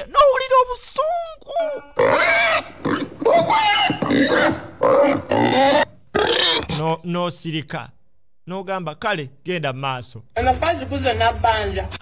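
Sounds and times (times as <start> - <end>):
man making vocal sounds: 0.0 - 2.0.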